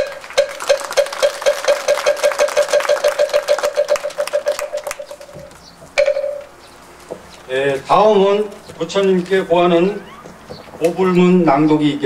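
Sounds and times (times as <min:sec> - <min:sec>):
wooden fish drum strokes: 0:00.0 - 0:09.2.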